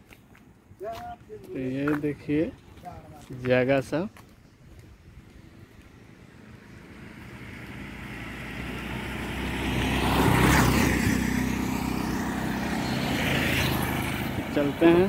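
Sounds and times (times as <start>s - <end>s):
auto-rickshaw engine passing: 5.4s - 15.0s.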